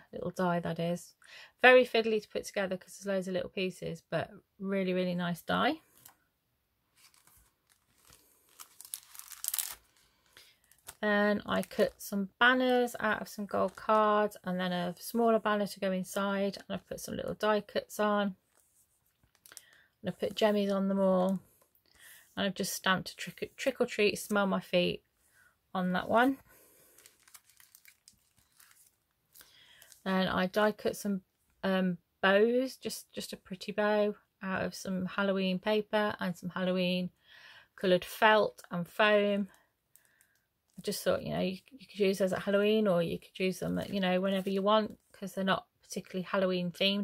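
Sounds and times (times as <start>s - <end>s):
card and paper rustling: 6.9s - 12.0s, 26.2s - 30.0s
plastic packet crinkling: 7.0s - 12.1s, 19.2s - 19.8s, 26.6s - 30.1s.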